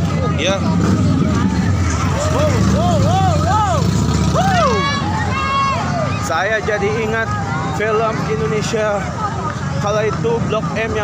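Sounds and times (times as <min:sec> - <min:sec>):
low traffic rumble: 0:00.0 - 0:11.0
people talking and calling out: 0:00.0 - 0:11.0.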